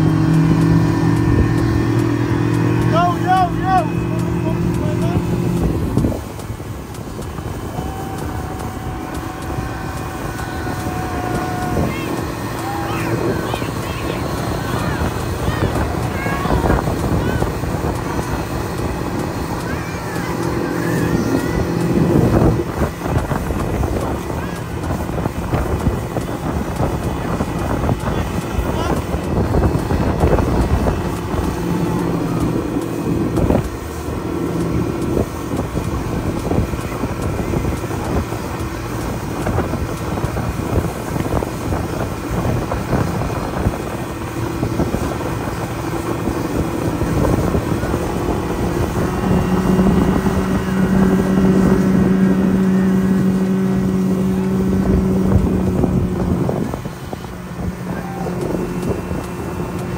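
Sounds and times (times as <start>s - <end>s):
outboard motor running: 0.0s - 59.9s
water rushing: 0.0s - 59.9s
wind buffeting microphone: 0.0s - 59.9s.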